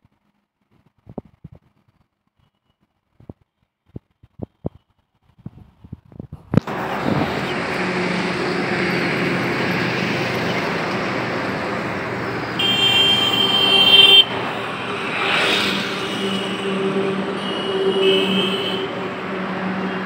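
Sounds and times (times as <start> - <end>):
road noise: 2.9 - 20.0
truck diesel engine running: 6.6 - 12.7
vehicle horn: 12.6 - 20.0.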